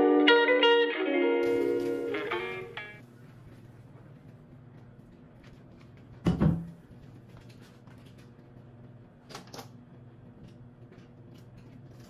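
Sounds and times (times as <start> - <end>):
low steady hum: 1.4 - 12.0.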